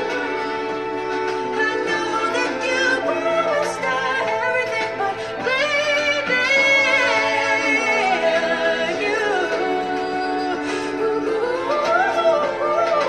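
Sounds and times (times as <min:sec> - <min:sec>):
backing singers in harmony: 0:00.0 - 0:13.0
female lead singer: 0:00.0 - 0:13.0.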